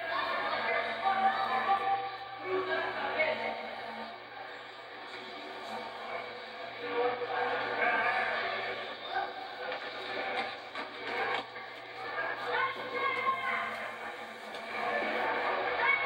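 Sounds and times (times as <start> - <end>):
muffled indistinct voices: 0.0 - 16.0.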